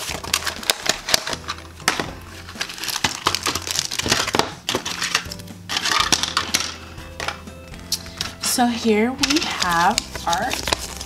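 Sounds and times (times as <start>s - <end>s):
faint background music: 0.0s - 11.0s
plastic wrapping crinkling: 0.0s - 11.0s.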